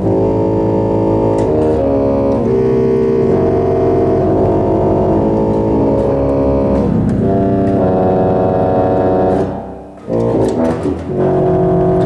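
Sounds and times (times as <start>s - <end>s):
pipe organ chords: 0.0s - 12.0s.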